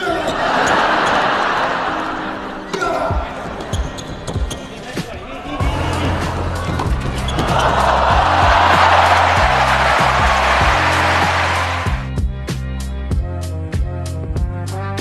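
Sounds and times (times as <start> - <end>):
crowd noise: 0.0 - 12.2
background music with bass line: 5.6 - 15.0.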